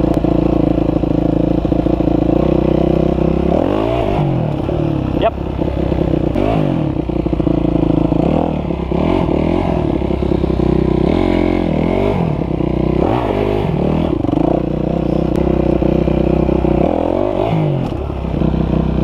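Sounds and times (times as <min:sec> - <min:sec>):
dirt bike engine revving: 0:00.0 - 0:19.0.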